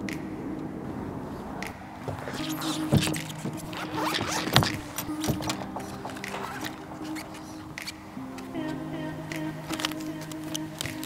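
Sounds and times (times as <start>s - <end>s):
case clicking and rattling: 2.1s - 8.0s
zipper pulled open: 2.2s - 7.3s
background music with held notes: 2.4s - 11.0s.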